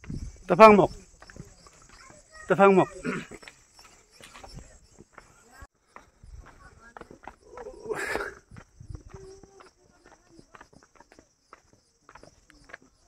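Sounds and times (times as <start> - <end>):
footsteps on dirt path: 0.0 - 13.0.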